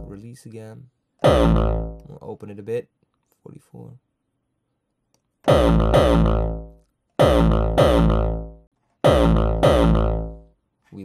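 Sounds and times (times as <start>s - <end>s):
synthesized kick drum hits: 1.2s - 2.0s, 5.5s - 10.5s.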